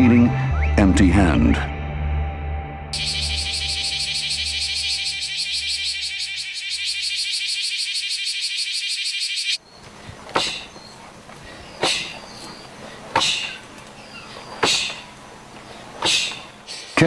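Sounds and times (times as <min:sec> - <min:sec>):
cicada buzzing: 0:03.0 - 0:15.4.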